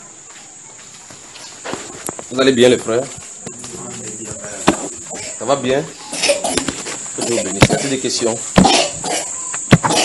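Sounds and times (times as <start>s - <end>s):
steady high hiss: 0.0s - 10.0s.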